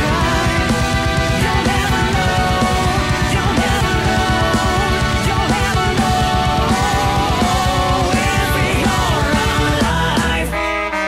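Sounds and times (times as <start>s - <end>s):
fast dense drumming: 0.0s - 10.5s
sliding lead melody: 0.0s - 11.0s.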